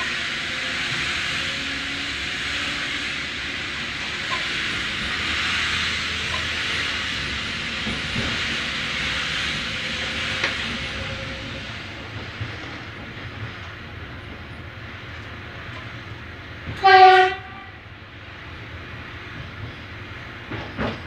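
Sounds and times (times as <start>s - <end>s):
train wheels rolling on rails: 0.0s - 21.0s.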